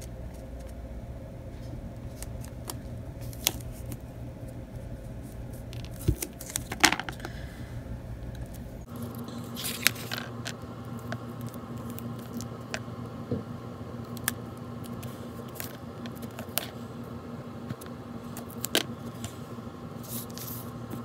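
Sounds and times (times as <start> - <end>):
scratchy handling noises: 17.7 - 21.0.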